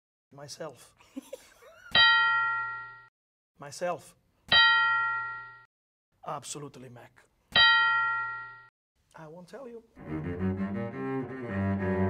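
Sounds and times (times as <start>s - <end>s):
bell-like chime: 2.0s - 3.1s, 4.5s - 5.7s, 7.6s - 8.7s.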